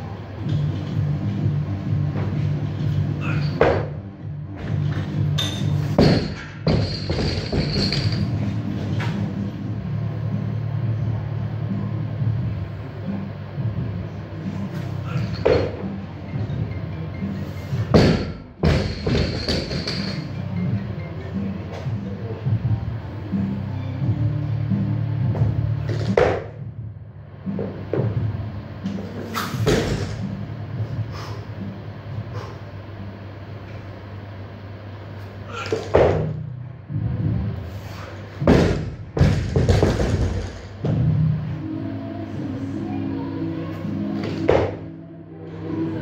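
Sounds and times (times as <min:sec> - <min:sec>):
background music: 0:00.0 - 0:33.5, 0:38.3 - 0:46.0
barbell thudding on gym floor: 0:17.9 - 0:20.2, 0:38.5 - 0:41.0
bumper plates bouncing: 0:17.9 - 0:20.4, 0:38.4 - 0:41.2
barbell dropped on platform: 0:29.6 - 0:30.2.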